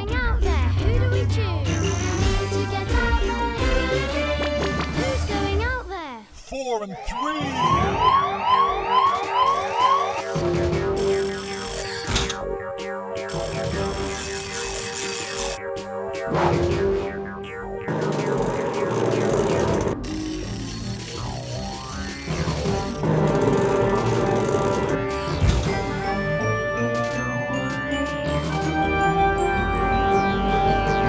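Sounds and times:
cartoon music: 0.0 - 5.8, 6.9 - 31.0
rising siren-like alarm: 7.0 - 20.1.

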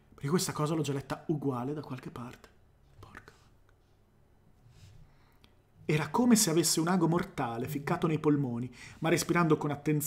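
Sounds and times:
man breathing faintly: 8.7 - 9.0.

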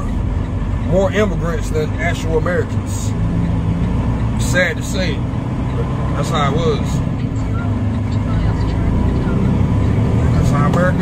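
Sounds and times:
diesel truck engine droning: 0.0 - 11.0.

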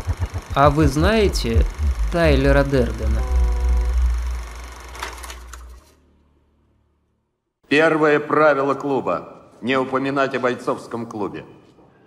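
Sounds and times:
rapid mechanical clicking: 0.0 - 2.8
low hum: 0.0 - 6.9.

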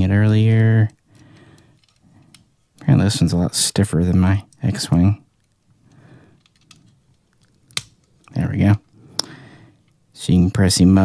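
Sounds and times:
handling rustle: 4.5 - 9.0.

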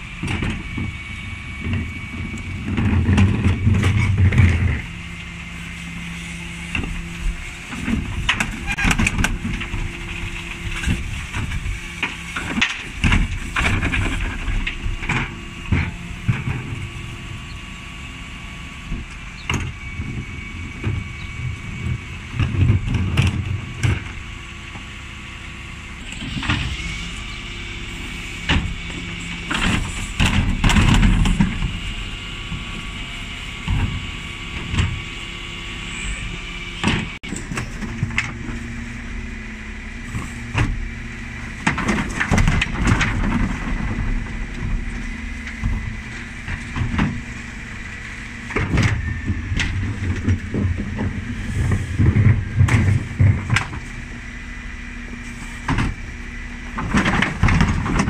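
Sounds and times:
wheelie bins clanking and thumping: 0.0 - 5.2, 6.6 - 17.6, 18.9 - 24.9, 26.2 - 35.8, 36.8 - 38.6, 40.2 - 58.0
hydraulic whine: 0.0 - 58.0
lorry engine running: 0.0 - 58.0.

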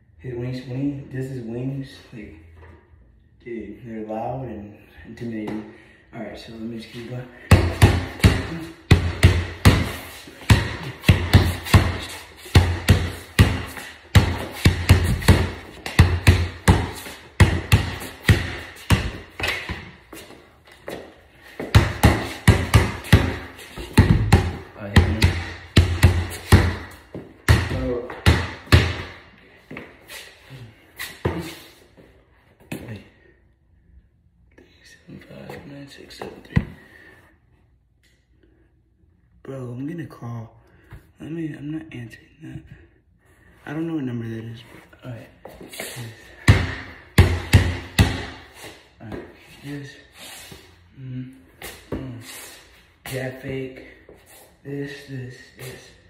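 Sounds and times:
basketball bouncing on concrete: 7.4 - 20.3, 21.6 - 29.8, 46.3 - 49.3.

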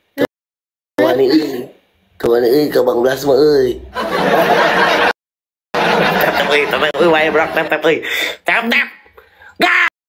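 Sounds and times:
man's wordless vocal outbursts: 1.0 - 1.8, 9.3 - 10.0
man shouting: 9.6 - 10.0.

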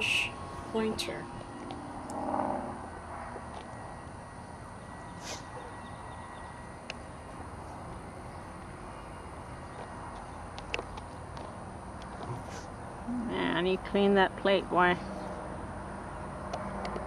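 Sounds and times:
outdoor background noise: 0.0 - 17.0.

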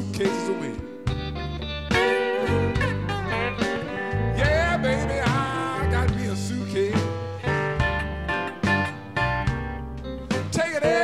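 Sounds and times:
man singing: 0.0 - 0.9, 4.1 - 7.7, 10.3 - 11.0
bass line: 0.0 - 11.0
blues guitar: 0.0 - 11.0.

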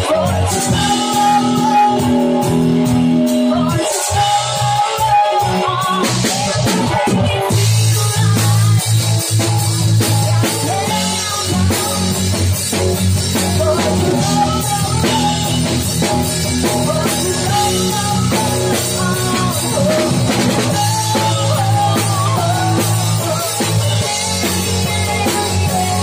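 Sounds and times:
drum kit playing: 0.0 - 26.0
rock backing track: 0.0 - 26.0.

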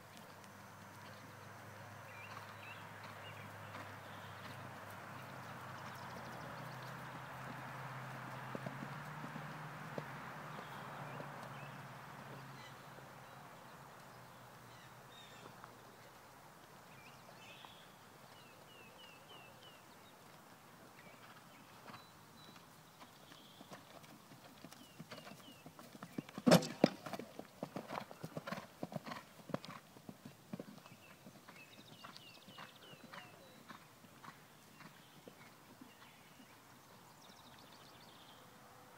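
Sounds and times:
horse hoofbeats on grass: 2.2 - 12.7, 21.0 - 36.6.

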